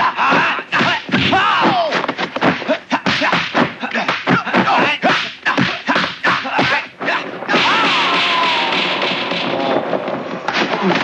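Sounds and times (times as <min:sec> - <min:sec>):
whip-like punch hits: 0:05.0 - 0:09.9.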